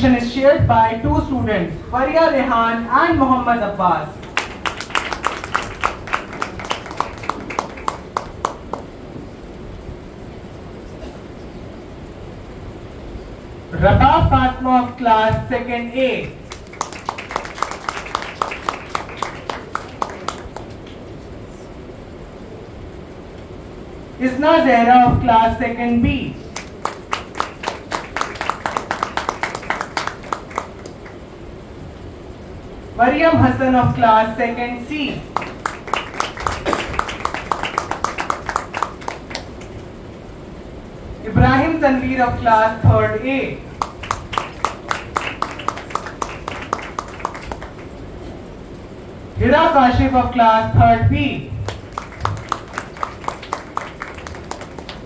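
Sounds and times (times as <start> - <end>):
small audience clapping: 4.2 - 9.0, 16.3 - 21.2, 26.5 - 31.3, 35.3 - 40.0, 43.7 - 48.1, 51.6 - 55.0.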